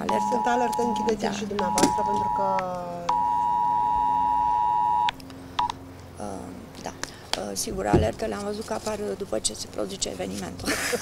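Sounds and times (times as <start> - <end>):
two-tone emergency alert signal: 0.0 - 5.7.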